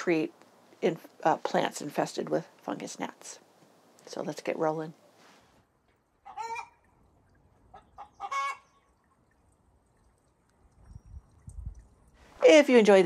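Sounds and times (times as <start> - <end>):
bird calling: 6.2 - 6.9, 7.7 - 8.9.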